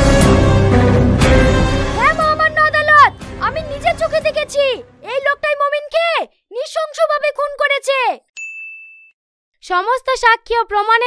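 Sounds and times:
bell-like ding: 8.4 - 9.2.

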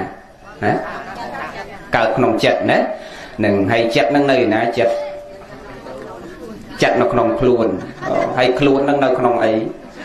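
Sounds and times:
low background noise: 0.0 - 10.0
man talking: 1.9 - 5.1, 6.8 - 9.8.

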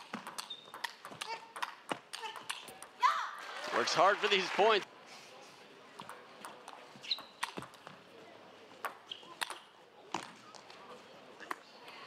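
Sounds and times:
table tennis ball clicks: 0.1 - 2.9.

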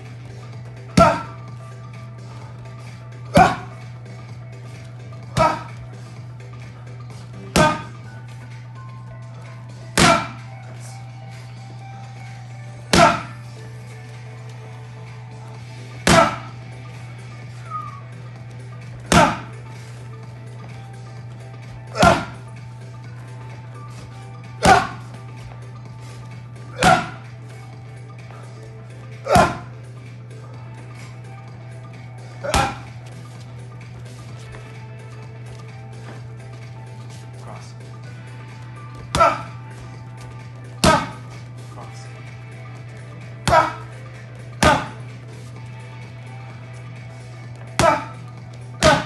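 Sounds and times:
steady low hum: 0.0 - 49.0
boxing gloves smacking punching shield: 7.5 - 7.9, 10.0 - 10.4, 12.9 - 13.4, 16.0 - 16.5, 19.1 - 19.5, 22.0 - 22.4, 24.6 - 25.0, 26.8 - 27.3, 29.3 - 29.7, 32.4 - 32.8, 40.8 - 41.2, 44.6 - 45.0, 48.8 - 49.0.

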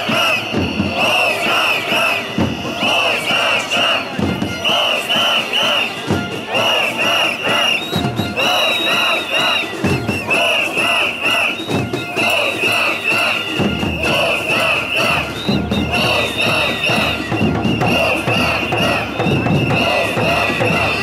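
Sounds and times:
crowd chanting and shouting: 0.0 - 21.0.

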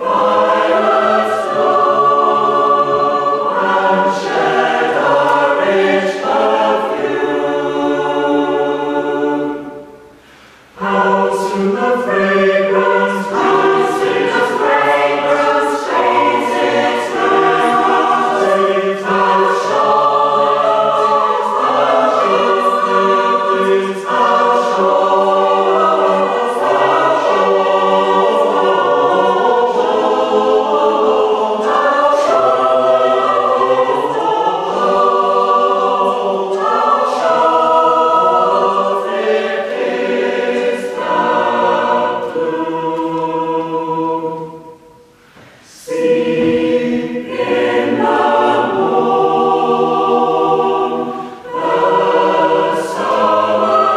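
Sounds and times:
mixed choir singing a hymn: 0.0 - 53.9
cello: 45.4 - 53.9.

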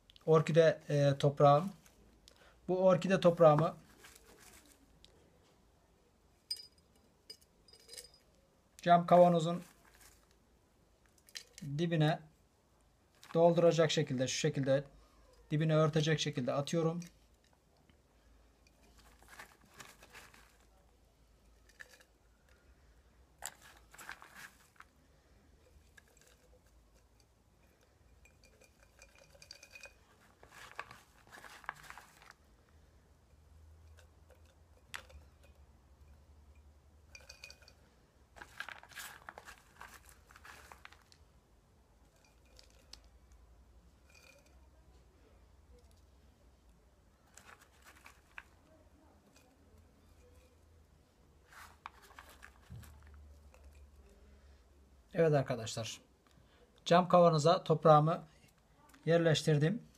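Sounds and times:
bark rustling and crunching: 3.4 - 4.9, 18.8 - 20.8, 23.4 - 32.6, 38.3 - 41.3, 47.2 - 50.5, 51.4 - 54.0
light clinks against glass: 6.5 - 8.4, 28.1 - 30.2, 33.9 - 37.8, 44.0 - 44.6.

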